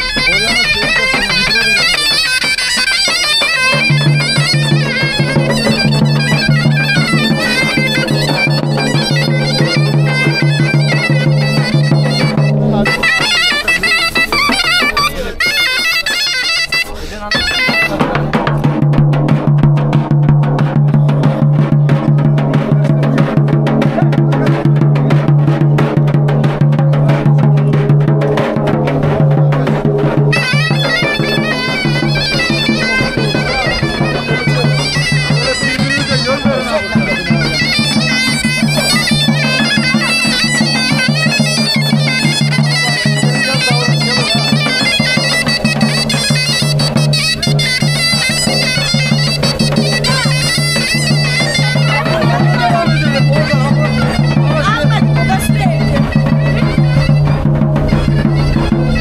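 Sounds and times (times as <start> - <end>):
bass drum beat: 0.0 - 15.1, 17.3 - 59.0
shrill reedy pipe melody: 0.0 - 59.0.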